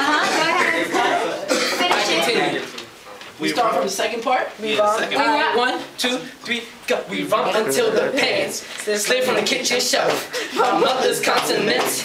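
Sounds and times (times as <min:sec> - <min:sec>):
people talking and chuckling: 0:00.0 - 0:03.3, 0:07.1 - 0:12.0
person coughing: 0:01.5 - 0:01.9.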